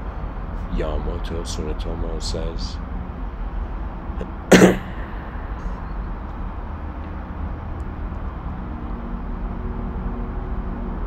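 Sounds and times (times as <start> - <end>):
low background hum: 0.0 - 9.7
person coughing: 4.5 - 5.3.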